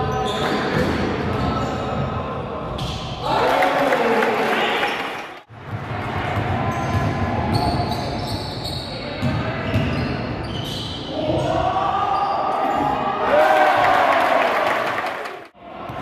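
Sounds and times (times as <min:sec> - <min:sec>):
sneakers squeaking: 0:00.0 - 0:02.0, 0:04.9 - 0:11.6.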